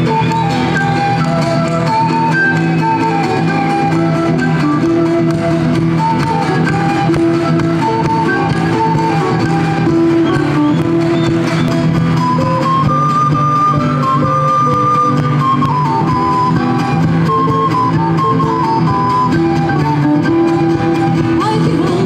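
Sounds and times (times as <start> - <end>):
folk band playing: 0.0 - 22.0.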